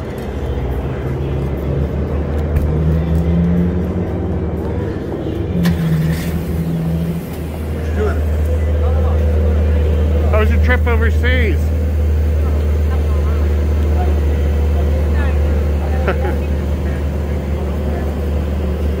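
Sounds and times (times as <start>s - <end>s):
indistinct voices: 0.0s - 19.0s
low engine hum: 0.0s - 19.0s
vehicle engine note rising and falling: 0.0s - 19.0s.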